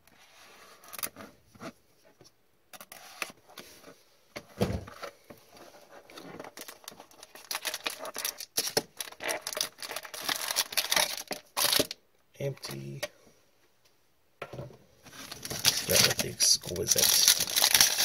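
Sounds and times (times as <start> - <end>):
foil packs crinkling: 6.5 - 12.0, 15.2 - 18.0.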